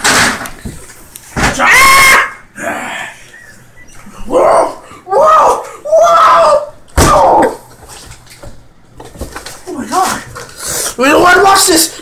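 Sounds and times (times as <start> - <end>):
man yelling: 1.5 - 2.4, 4.3 - 7.6.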